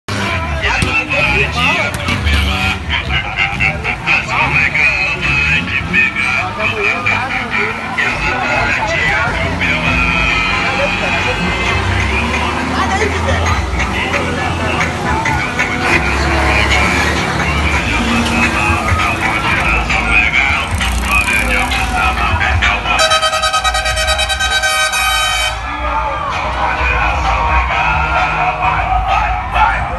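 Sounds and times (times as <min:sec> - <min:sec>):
crowd voices and shouts: 0:00.1 - 0:29.9
passing vehicle engines: 0:00.1 - 0:29.9
music: 0:07.5 - 0:29.9
pulsing vehicle air horn: 0:22.9 - 0:25.7.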